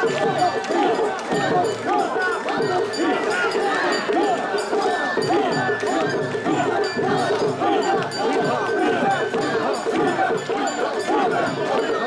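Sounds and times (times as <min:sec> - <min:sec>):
crowd chanting rhythmically: 0:00.0 - 0:12.0.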